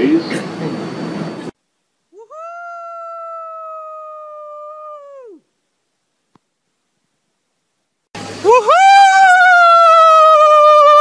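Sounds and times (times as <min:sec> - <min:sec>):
subway car noise: 0:00.0 - 0:01.6
long high wail: 0:02.2 - 0:05.4, 0:08.4 - 0:11.0.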